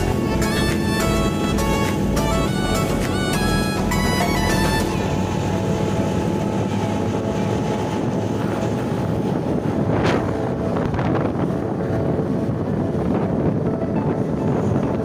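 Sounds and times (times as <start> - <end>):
motorcycle engine and road noise: 0.0 - 15.0
wind buffeting microphone: 0.0 - 15.0.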